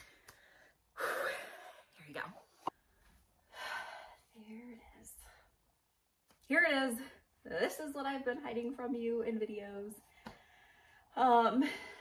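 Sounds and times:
woman breathing: 0:00.0 - 0:02.0, 0:02.7 - 0:05.7, 0:10.0 - 0:12.0.

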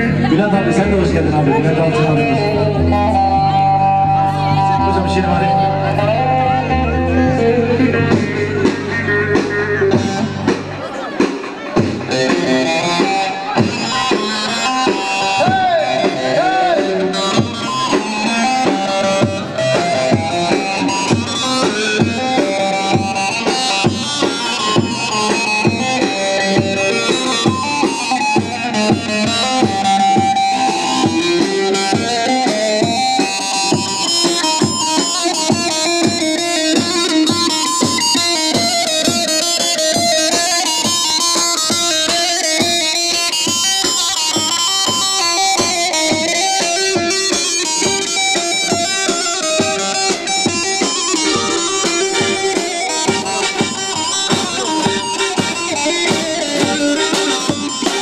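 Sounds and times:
electronic keyboard: 0:00.0 - 0:58.0
steady drum beat: 0:07.5 - 0:58.0.

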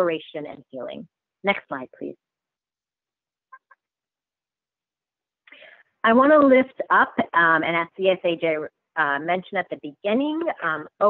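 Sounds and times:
person speaking: 0:00.0 - 0:02.2.

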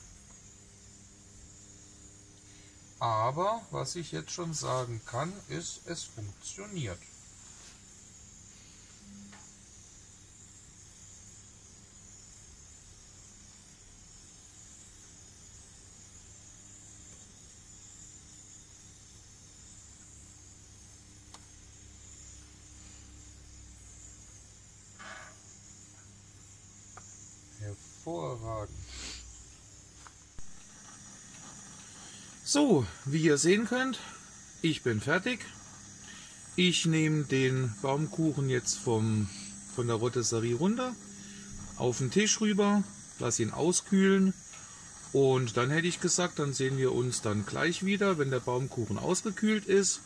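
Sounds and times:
gas grill hiss and hum: 0:00.0 - 0:50.0.

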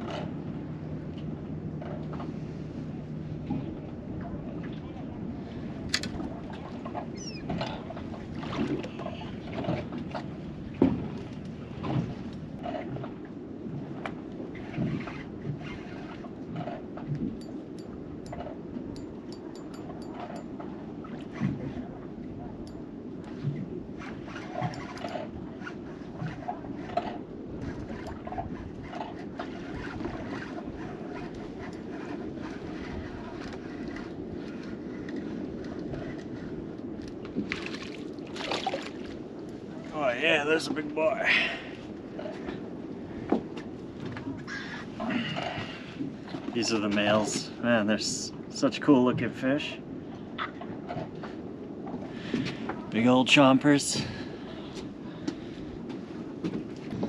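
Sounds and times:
wind noise on microphone: 0:01.8 - 0:40.0, 0:48.3 - 0:57.0.

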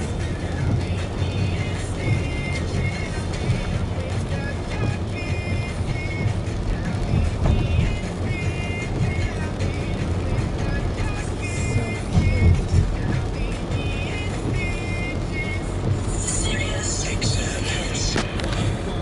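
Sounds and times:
car driving on wet road: 0:00.0 - 0:19.0
music with repeated phrases: 0:00.0 - 0:19.0.

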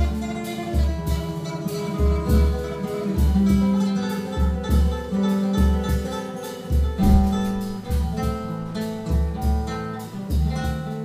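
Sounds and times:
nylon-string guitar playing: 0:00.0 - 0:11.0
deep bass notes: 0:07.0 - 0:09.1.

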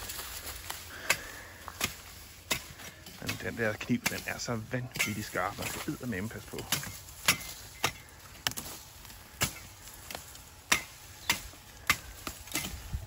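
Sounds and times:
machete chopping stalks: 0:00.0 - 0:13.0.

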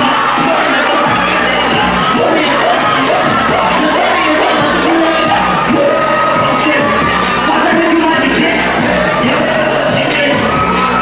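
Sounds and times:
audience cheering and shouting: 0:00.0 - 0:11.0
music playing: 0:00.0 - 0:11.0.

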